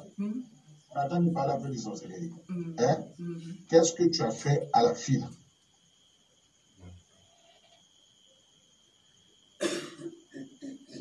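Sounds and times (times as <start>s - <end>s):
person coughing: 9.6s - 10.8s.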